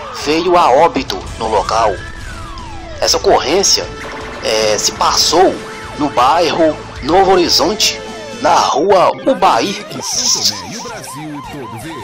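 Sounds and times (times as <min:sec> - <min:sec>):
siren fast yelp: 0:00.0 - 0:12.0.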